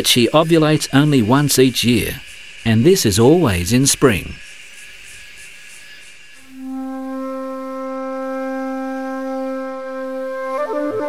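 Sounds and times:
flute-like note held: 0:06.5 - 0:11.0.

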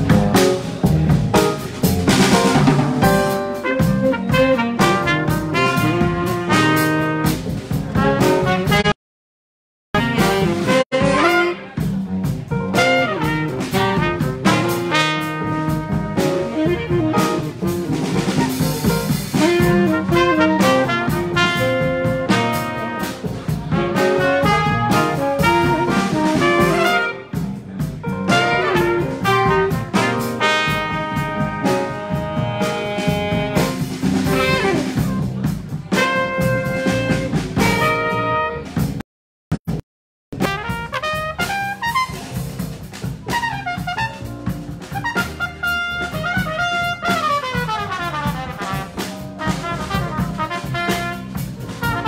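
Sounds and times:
drum kit: 0:00.0 - 0:09.0, 0:10.0 - 0:39.0, 0:39.6 - 0:52.0
trumpets: 0:00.0 - 0:09.0, 0:10.0 - 0:39.0, 0:40.4 - 0:52.0
upright bass: 0:00.0 - 0:09.0, 0:10.0 - 0:39.0, 0:39.6 - 0:52.0
tenor saxophone: 0:03.5 - 0:08.9, 0:10.0 - 0:12.0, 0:12.8 - 0:27.4, 0:28.3 - 0:35.2, 0:36.0 - 0:38.8.

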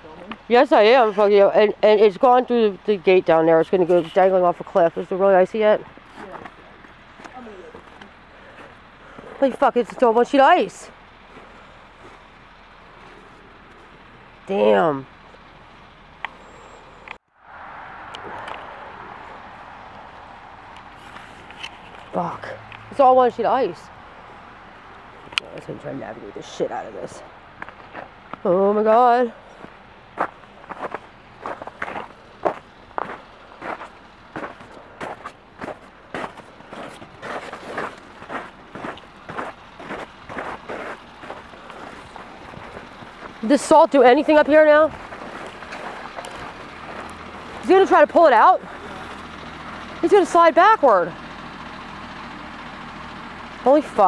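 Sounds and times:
faint outdoor background noise: 0:00.0 - 0:54.0
footsteps crunching on snow: 0:29.6 - 0:47.7.

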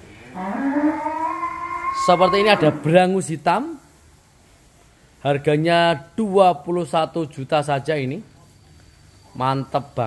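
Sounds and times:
bull mooing: 0:00.3 - 0:02.9.

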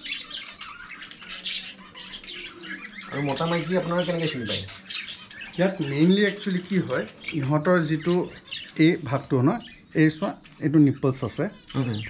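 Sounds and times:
budgerigars chattering and chirping: 0:00.0 - 0:12.0.

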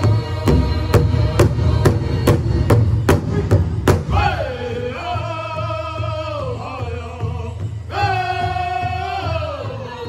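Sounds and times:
people singing: 0:00.0 - 0:10.0
big drum struck by drummers: 0:00.4 - 0:04.6.

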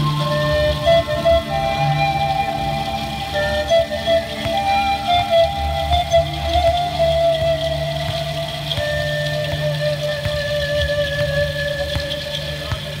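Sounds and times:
low drone: 0:00.0 - 0:13.0
pan flute music: 0:00.0 - 0:13.0.

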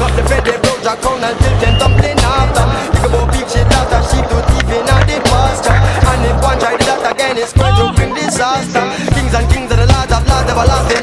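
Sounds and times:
reggae music with heavy bass: 0:00.0 - 0:11.0
skateboard clacks: 0:00.0 - 0:11.0
skateboard wheels rolling on concrete: 0:00.0 - 0:11.0.

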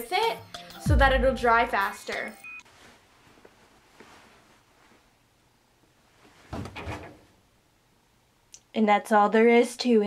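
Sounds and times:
towel thumping in dryer drum: 0:06.4 - 0:07.3.

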